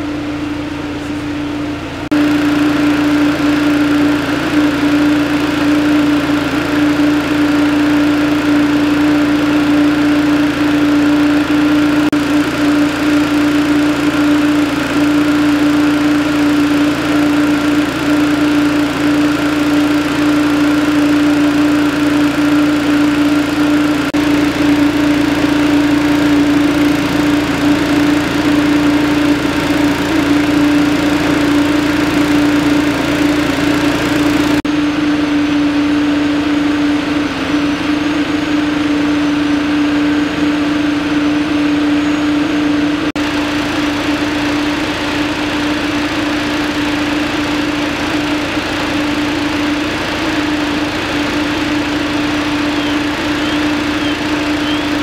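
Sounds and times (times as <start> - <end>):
small gasoline engine running: 0.0 - 55.0.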